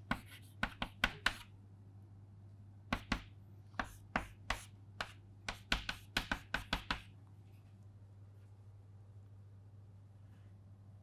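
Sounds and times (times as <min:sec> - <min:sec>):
chalk tapping on chalkboard: 0:00.0 - 0:01.5, 0:02.9 - 0:07.1.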